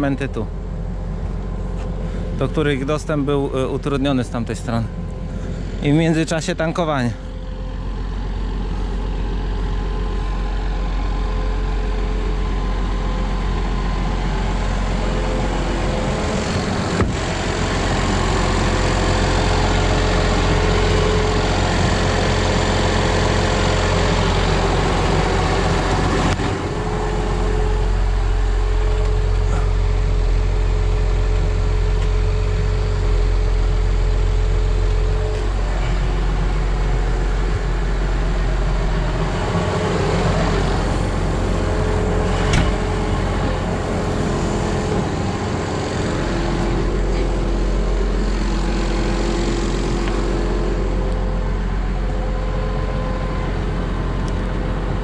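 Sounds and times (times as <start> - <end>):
steady whine: 0.0 - 55.0
tractor engine idling: 0.0 - 55.0.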